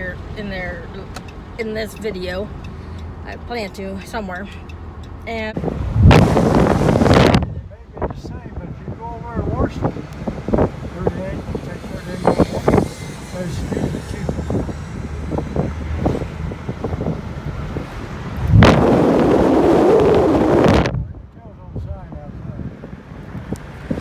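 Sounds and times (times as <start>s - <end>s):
road noise inside moving car: 0.0s - 24.0s
wind rushing on microphone: 5.6s - 24.0s.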